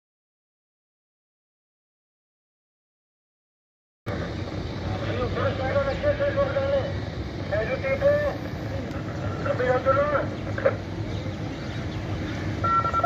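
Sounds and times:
low rumble of vehicle engines: 4.1 - 13.0
men talking: 4.8 - 11.4.

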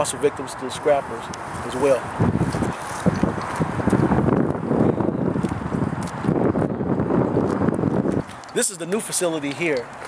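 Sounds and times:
wind on microphone: 0.0 - 8.9
microphone handling noise: 1.4 - 8.6.

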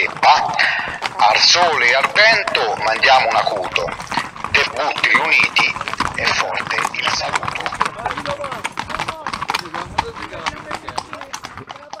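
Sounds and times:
faint voices: 0.0 - 12.0
hooves clip-clopping on asphalt: 0.0 - 12.0.

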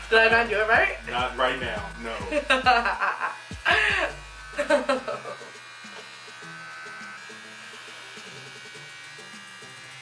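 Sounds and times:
electric hair clippers buzzing: 0.0 - 10.0
soft background music: 0.0 - 10.0.

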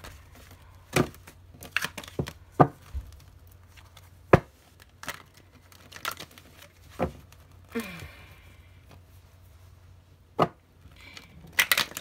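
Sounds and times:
cards rustling: 0.0 - 8.0, 10.9 - 12.0
cards snapping and slapping: 11.0 - 12.0.

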